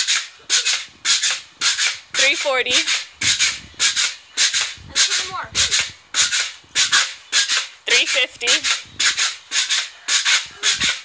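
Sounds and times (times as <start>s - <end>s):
pogo stick bouncing on concrete: 0.0s - 11.0s.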